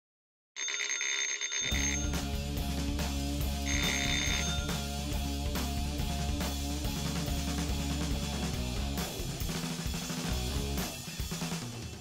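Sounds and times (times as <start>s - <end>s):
telephone bell ringing: 0.6s - 2.3s, 3.6s - 4.9s
rock music with guitar and drums: 1.7s - 12.0s.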